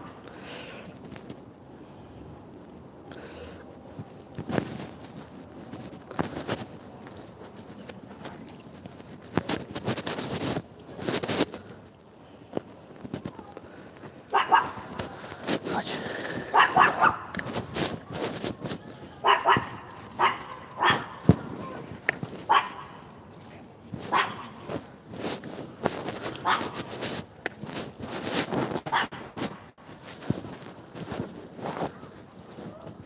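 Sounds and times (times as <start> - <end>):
rustling noise: 3.7 - 33.0
dog barking: 14.3 - 14.9, 16.5 - 17.3, 19.2 - 21.3, 22.5 - 23.0, 24.1 - 24.6, 26.4 - 26.8, 28.9 - 29.2.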